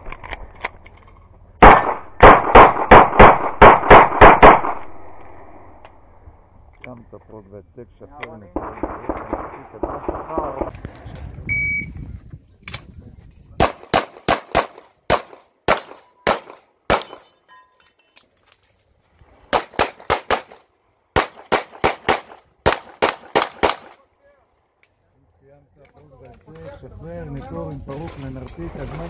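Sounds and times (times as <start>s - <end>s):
pistol firing rapid shots: 1.6s - 4.8s, 13.6s - 17.2s, 19.5s - 20.6s, 21.2s - 23.9s
shot timer beep: 11.5s - 11.9s.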